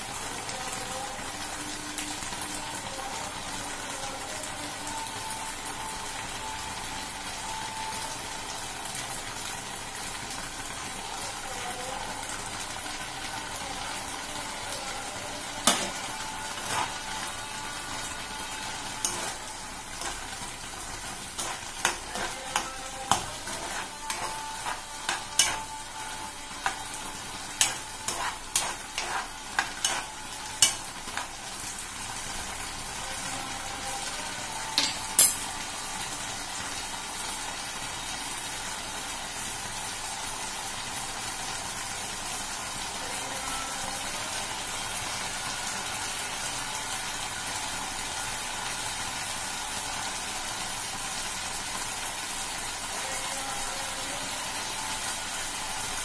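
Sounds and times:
chickpeas frying in a pan: 0:00.0 - 0:56.0
steady sizzle: 0:00.0 - 0:56.0
spatula knocking and scraping pan: 0:21.4 - 0:25.8, 0:27.6 - 0:31.3.

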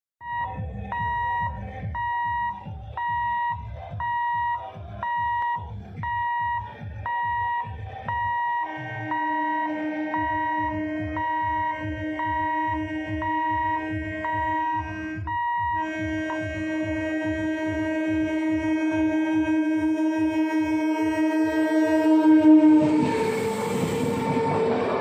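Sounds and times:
high electronic warning beeps: 0:00.2 - 0:15.8
steady lower tone: 0:00.2 - 0:16.5, 0:19.2 - 0:25.0.

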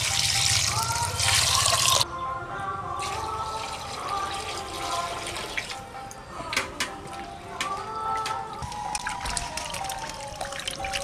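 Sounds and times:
water splashing: 0:08.7 - 0:11.0.

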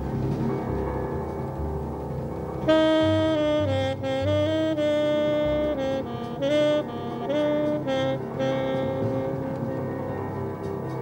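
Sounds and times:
tenor saxophone jazz line: 0:02.6 - 0:11.0.

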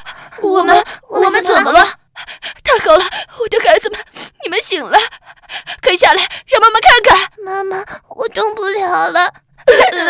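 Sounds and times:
woman speaking: 0:00.3 - 0:02.0, 0:02.6 - 0:05.1, 0:05.8 - 0:09.8.

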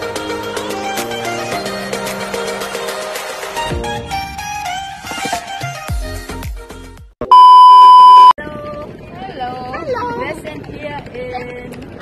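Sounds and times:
high-pitched test tone beep: 0:07.2 - 0:08.4.

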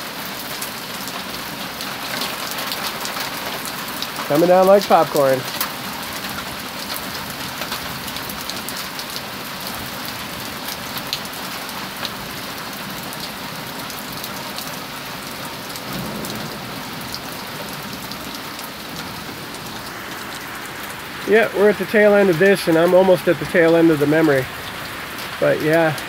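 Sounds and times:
hailstones ticking: 0:00.0 - 0:26.0
heavy rain hissing: 0:00.0 - 0:26.0.

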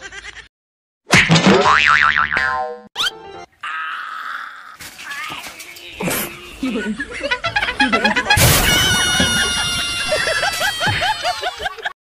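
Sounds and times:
cartoon boing sound effect: 0:01.1 - 0:03.1.

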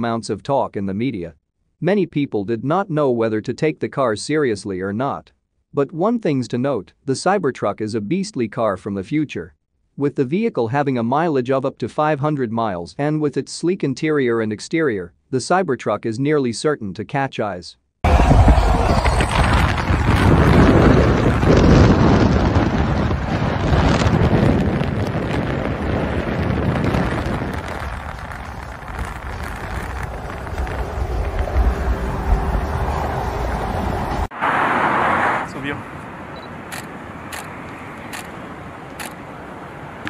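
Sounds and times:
car wind and road noise: 0:18.1 - 0:40.0
sharp clicks: 0:36.4 - 0:39.2.

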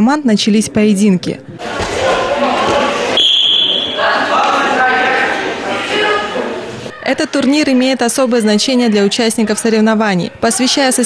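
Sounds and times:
voices yelling long calls: 0:01.6 - 0:07.1.

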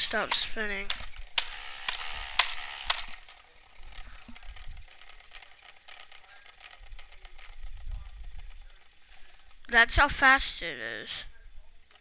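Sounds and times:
sharp clicks: 0:00.0 - 0:08.7
handling rumble: 0:00.0 - 0:09.7
toy wheel whirring with ticks: 0:00.0 - 0:12.0.

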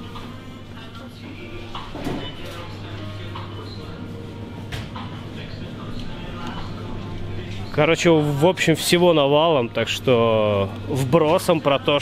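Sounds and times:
faint background voices: 0:00.5 - 0:08.5.

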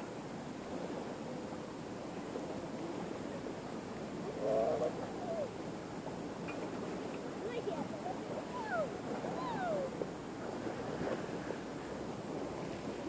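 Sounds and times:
river background noise: 0:00.0 - 0:13.0
short wavering call: 0:08.4 - 0:10.0.

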